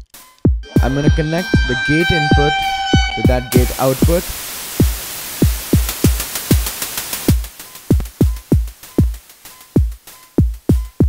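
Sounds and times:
short synth tone: 0.6 - 4.4
white-noise hi-hat ticks: 4.8 - 10.6.

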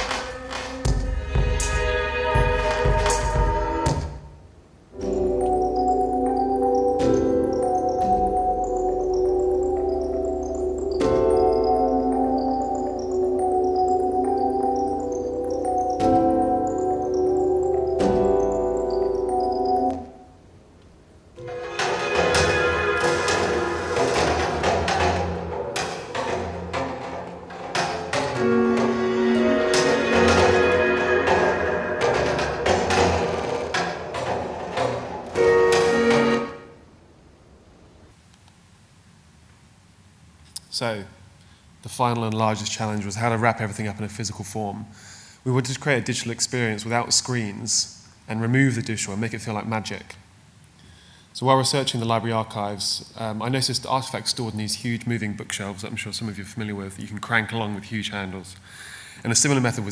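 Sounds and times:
irregular percussive hits: 0.0 - 4.3, 5.0 - 19.7, 21.4 - 36.5
deep drum-like hits: 0.8 - 4.3
held synth chords: 5.0 - 20.2, 28.4 - 36.7
high chiming notes: 5.0 - 20.4, 28.4 - 33.2.

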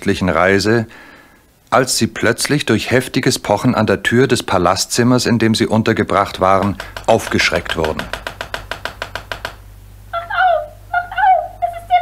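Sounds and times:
heavy knocking on door: 6.3 - 9.8.

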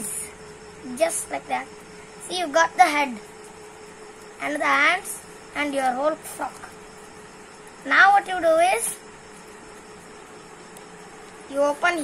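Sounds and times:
faint steady hum: 0.0 - 12.0
thin high whine: 0.0 - 12.0.

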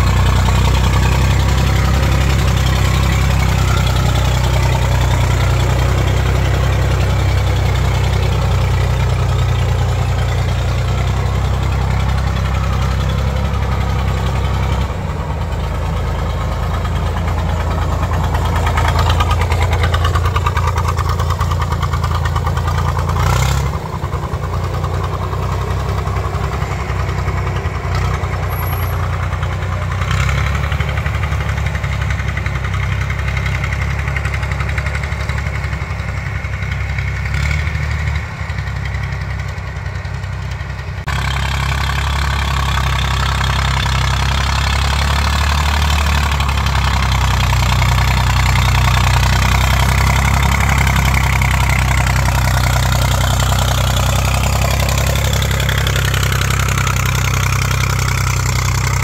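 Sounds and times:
tractor engine running under load: 0.0 - 59.0.

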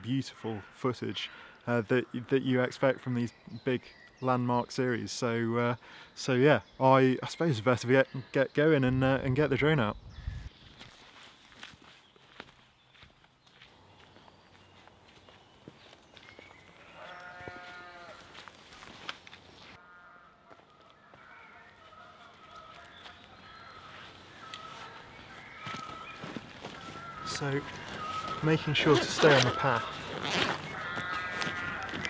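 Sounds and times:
faint footsteps on path: 10.0 - 32.0
sheep bleating: 16.8 - 18.4, 19.8 - 25.0, 25.6 - 32.0.

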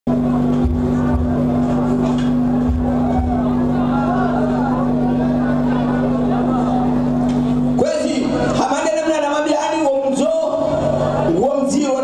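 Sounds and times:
low drum beats: 0.1 - 3.9.

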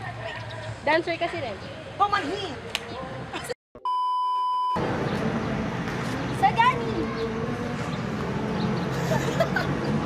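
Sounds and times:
electronic censor beep: 3.8 - 4.8.

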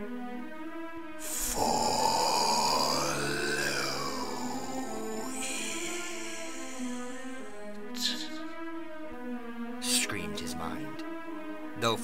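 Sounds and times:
background music: 0.0 - 12.0
rough growl sound effect: 1.4 - 7.6.

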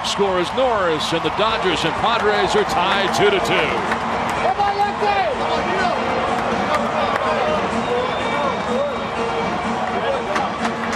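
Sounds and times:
crowd cheering: 0.0 - 10.9.

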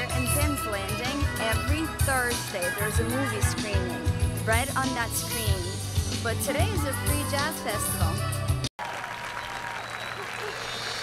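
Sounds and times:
audience applauding: 8.8 - 11.0.

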